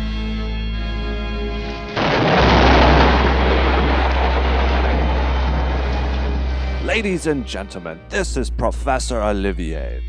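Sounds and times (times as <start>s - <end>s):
deep steady music drone: 0.0s - 10.0s
thunder rumble: 1.9s - 7.5s.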